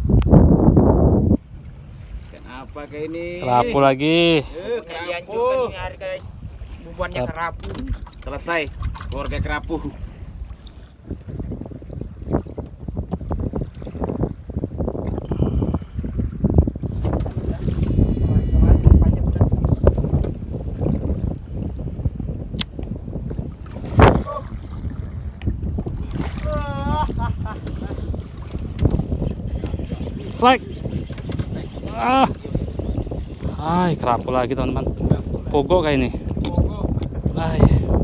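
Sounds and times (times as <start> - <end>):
wind buffeting microphone: 0.0 - 38.0
water slapping against boat: 4.8 - 38.0.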